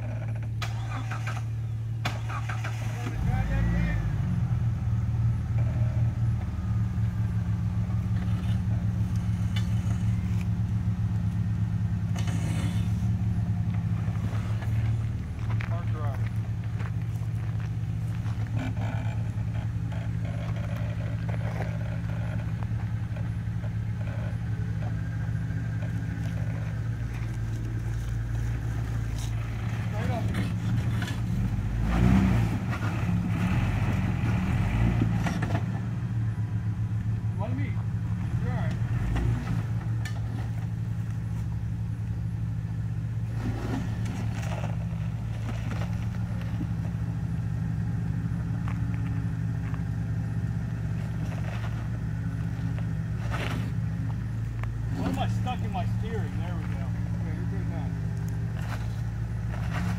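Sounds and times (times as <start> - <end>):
engine revving: 0.0 - 40.6, 43.2 - 59.9
engine idling: 0.0 - 59.9.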